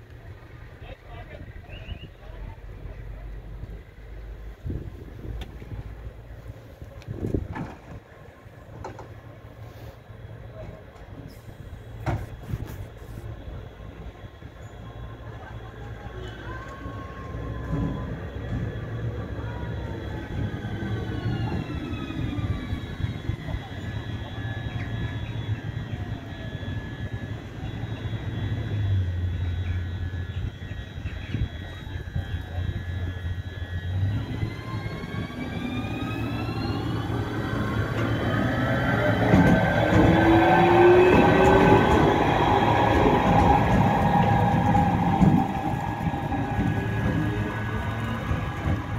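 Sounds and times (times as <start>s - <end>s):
electric locomotive hum: 0.0s - 48.9s
high whining tones: 19.7s - 48.9s.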